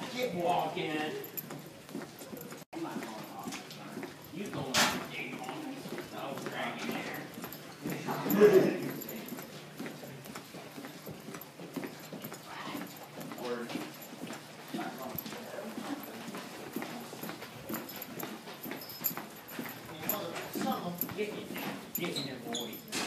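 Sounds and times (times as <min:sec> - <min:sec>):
footsteps on hard floor: 0:00.0 - 0:23.0.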